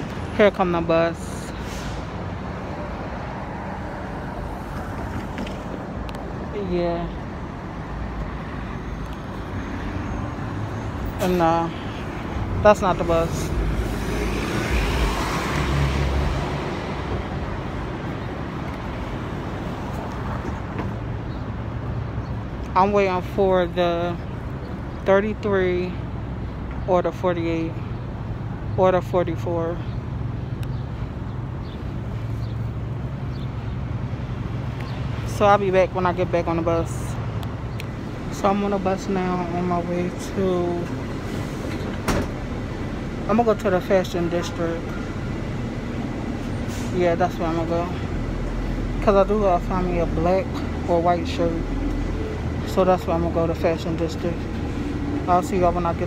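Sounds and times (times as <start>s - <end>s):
large vehicle road rumble: 0.0s - 56.0s
street traffic noise: 0.0s - 56.0s.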